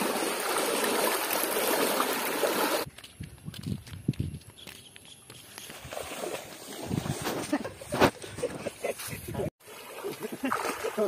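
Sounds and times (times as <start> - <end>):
water splashing and sloshing: 0.0 - 2.9, 5.5 - 9.0, 9.6 - 11.0
footsteps on a path: 2.8 - 9.4.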